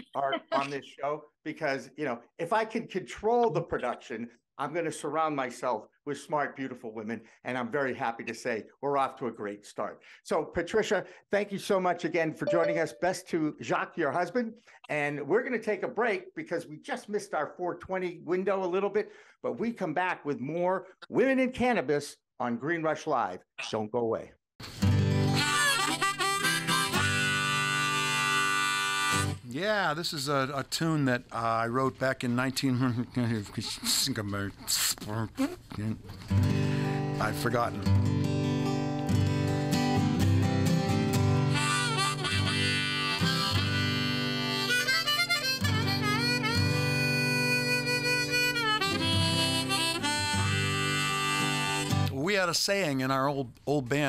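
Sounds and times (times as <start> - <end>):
strummed acoustic guitar: 24.6 - 25.4, 36.1 - 44.6
harmonica playing blues: 25.2 - 29.4, 41.3 - 52.1.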